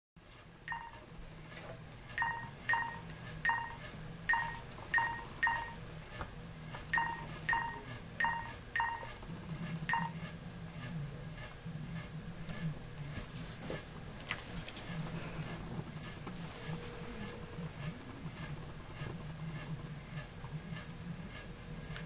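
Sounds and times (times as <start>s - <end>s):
phone keypad beeps: 0.7s - 1.0s, 2.2s - 5.8s, 7.0s - 9.1s, 9.9s - 10.2s.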